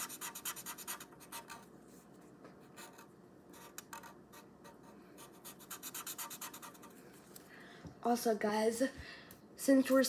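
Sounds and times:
marker scratching on paper: 0:00.0 - 0:01.7, 0:02.6 - 0:06.9.

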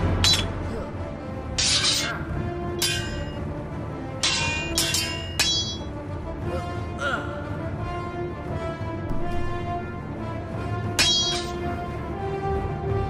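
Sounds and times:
sword blades clashing: 0:00.0 - 0:00.8, 0:01.6 - 0:03.4, 0:04.2 - 0:05.9, 0:11.0 - 0:11.8
background music: 0:00.0 - 0:13.0.

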